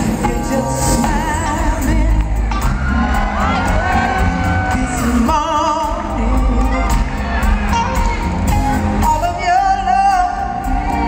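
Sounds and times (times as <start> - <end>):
woman singing with vibrato: 0.0 - 2.5, 3.2 - 7.4, 8.9 - 11.0
soul band playing: 0.0 - 11.0.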